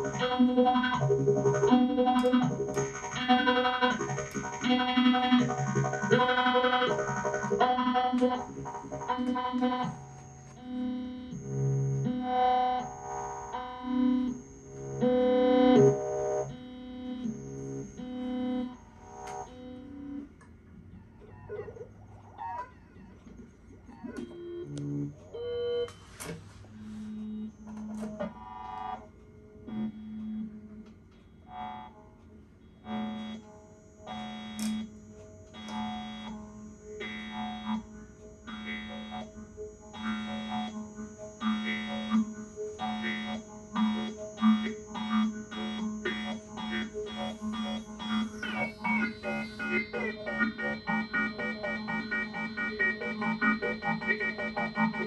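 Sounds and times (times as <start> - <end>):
low electronic pulse: 32.6 - 55.0
synth tones: 40.0 - 55.0.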